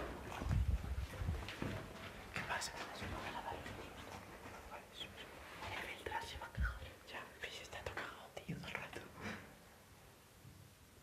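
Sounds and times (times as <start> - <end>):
microphone handling rustle: 0.0 - 4.5.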